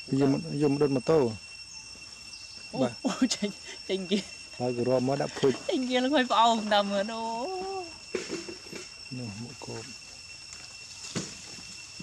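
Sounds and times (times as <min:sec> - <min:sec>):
high-pitched insect chorus: 0:00.0 - 0:12.0
man speaking: 0:00.1 - 0:01.4, 0:04.6 - 0:05.6.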